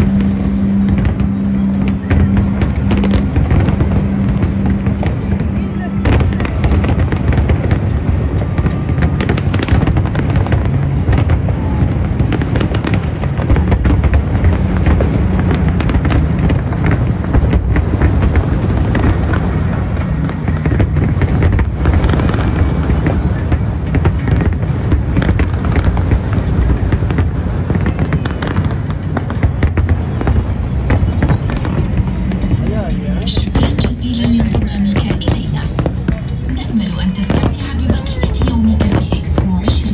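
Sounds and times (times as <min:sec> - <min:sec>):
fireworks cracks and pops: 0:00.0 - 0:39.9
heavy low rumble: 0:00.0 - 0:39.9.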